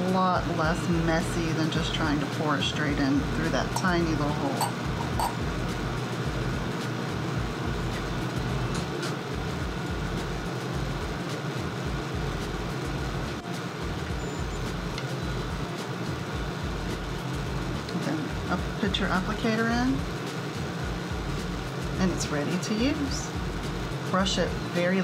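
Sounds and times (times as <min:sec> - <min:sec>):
low rumbling background noise: 0:00.0 - 0:25.0.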